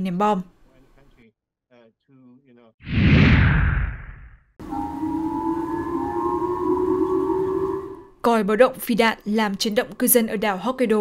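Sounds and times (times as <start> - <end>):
two-tone warning siren: 4.6 - 8.2.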